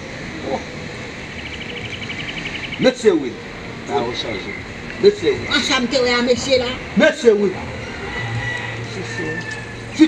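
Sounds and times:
steady background hiss: 0.0s - 8.2s.

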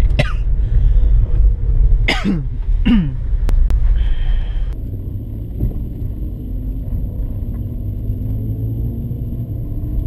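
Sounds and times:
car engine rumble and road noise: 0.0s - 10.0s
person coughing: 0.2s - 0.5s, 2.1s - 3.2s.

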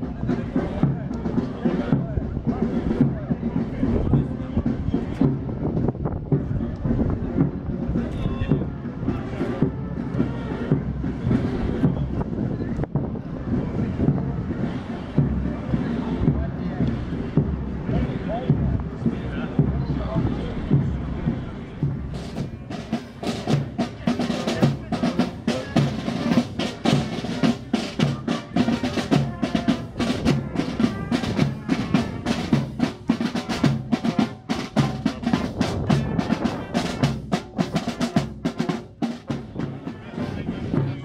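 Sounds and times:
snare and bass drums marching: 0.0s - 41.0s.

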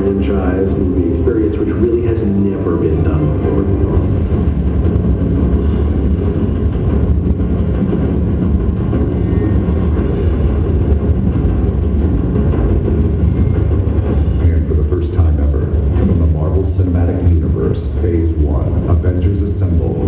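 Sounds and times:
voice over speakers: 0.0s - 4.3s, 9.0s - 10.2s, 14.4s - 20.0s
heavy bass rumble: 0.0s - 20.0s.

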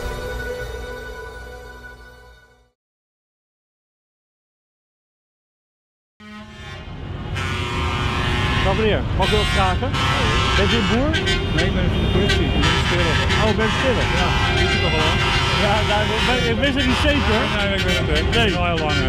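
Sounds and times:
vehicle horns sounding together: 6.2s - 19.0s
people's voices: 8.6s - 19.0s.

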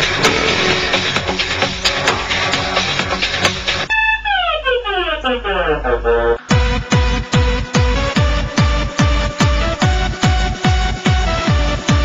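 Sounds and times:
trance dance music: 0.0s - 12.0s.

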